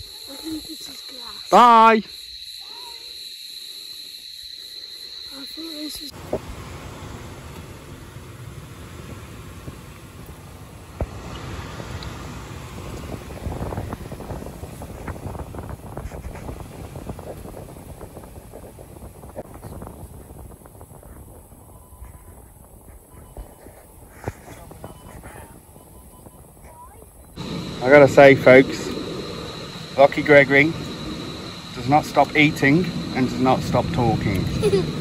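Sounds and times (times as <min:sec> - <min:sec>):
tyres rumbling on gravel: 0:06.1 - 0:25.8.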